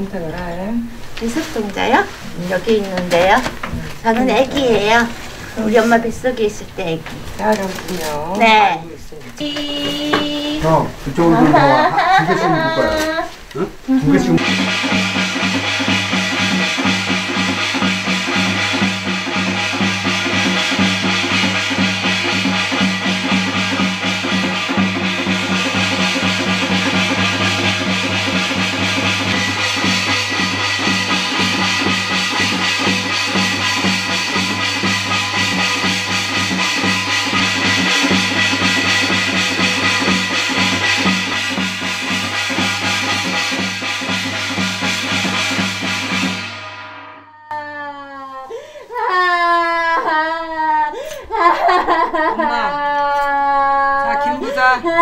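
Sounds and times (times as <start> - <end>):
hourglass drum beaten fast: 0.0 - 6.9, 10.1 - 12.9, 14.1 - 47.3
gong: 14.1 - 47.9.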